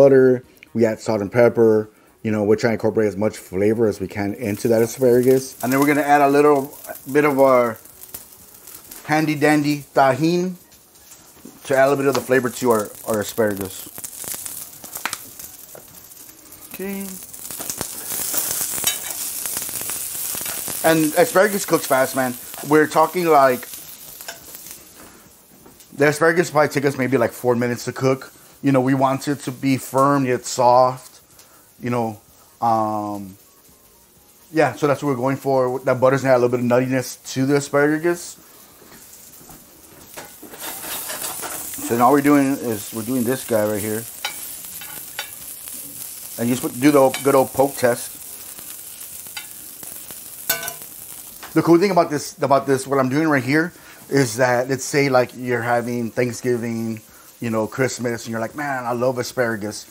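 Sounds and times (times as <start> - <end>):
vegetables sizzling in a pan: 0.0 - 59.9
metal spoon scraping a pan: 17.6 - 19.4, 40.1 - 42.4, 44.1 - 45.5, 46.9 - 47.8, 50.5 - 50.9.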